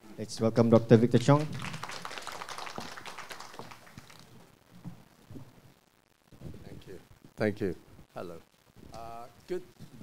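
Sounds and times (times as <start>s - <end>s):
audience applause: 1.3s - 4.4s.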